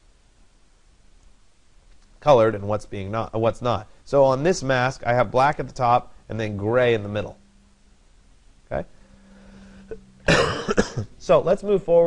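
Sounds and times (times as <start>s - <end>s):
faint steady hum: 0.0s - 12.0s
man coughing: 10.2s - 11.1s.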